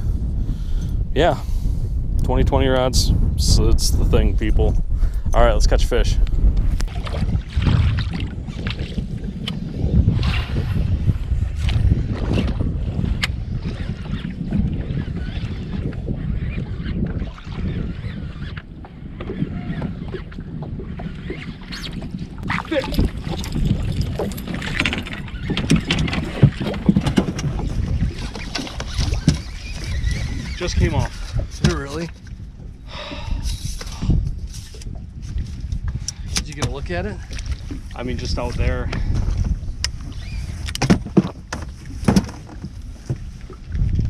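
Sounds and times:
wind buffeting microphone: 0:00.0 - 0:44.0
water slapping boat hull: 0:05.6 - 0:44.0
fishing gear clicks and knocks: 0:33.4 - 0:37.9.

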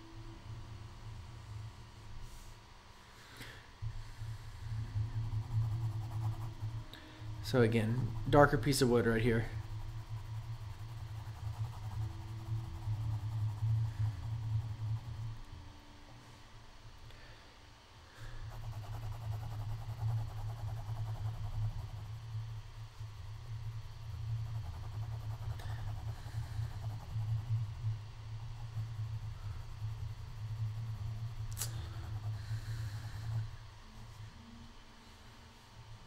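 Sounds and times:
pencil scratching on paper: 0:04.0 - 0:15.6, 0:18.1 - 0:34.2.

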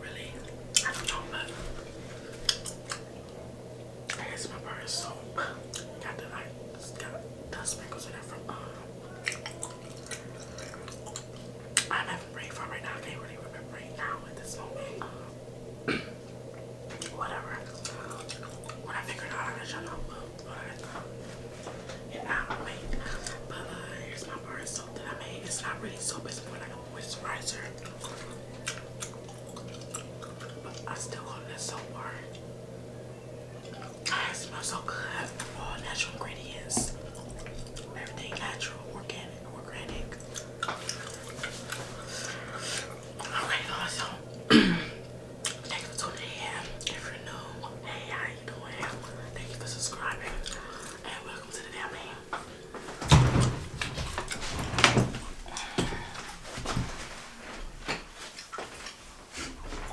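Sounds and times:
low hum: 0:00.0 - 0:58.0
bubble gum chewing: 0:27.7 - 0:31.0.

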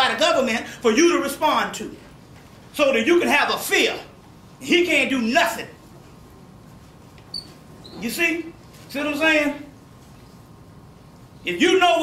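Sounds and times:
short high-pitched squeak: 0:07.3 - 0:08.0.

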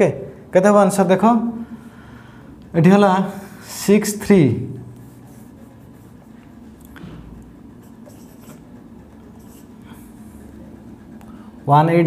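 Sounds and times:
marker writing on whiteboard: 0:04.0 - 0:11.2.

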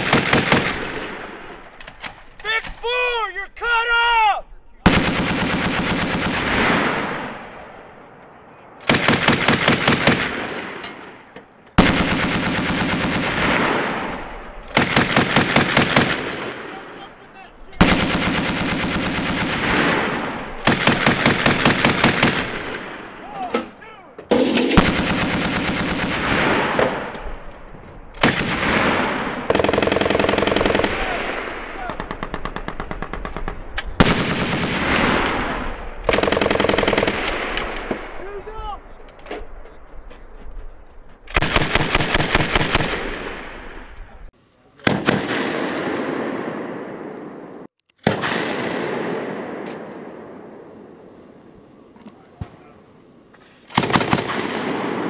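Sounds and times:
long echo of gunfire: 0:00.0 - 0:02.1, 0:04.8 - 0:23.3, 0:24.3 - 0:38.9, 0:41.3 - 0:51.1, 0:53.7 - 0:55.0
automatic grenade launcher bursts: 0:24.3 - 0:27.6.

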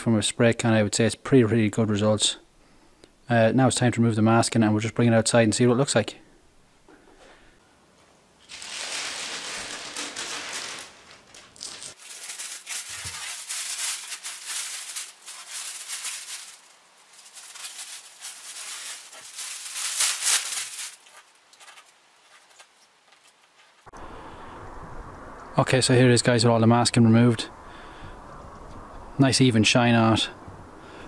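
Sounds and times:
masking paper crinkling and ripping: 0:08.4 - 0:23.9.

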